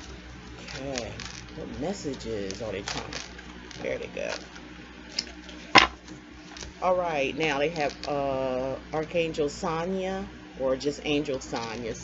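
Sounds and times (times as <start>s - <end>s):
cards being handled: 0.0s - 6.8s.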